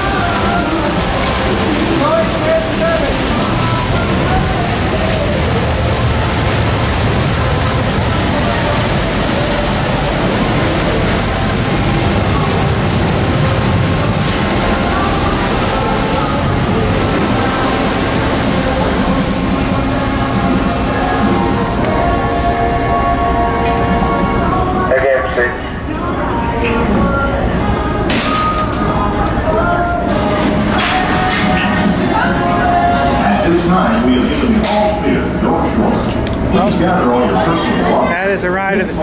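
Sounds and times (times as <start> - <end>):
churning water: 0.0 - 39.0
faint voices of passengers: 0.0 - 39.0
ferry engines rushing: 0.0 - 39.0.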